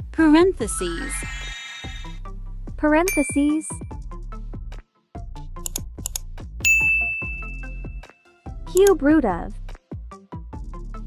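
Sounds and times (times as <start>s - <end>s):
notification bell ding: 3.1s - 3.8s, 6.7s - 8.1s.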